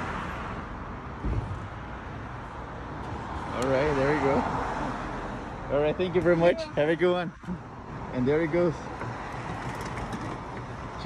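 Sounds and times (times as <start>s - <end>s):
street noise: 0.0s - 11.0s
robot wheels rolling rumble: 9.0s - 11.0s.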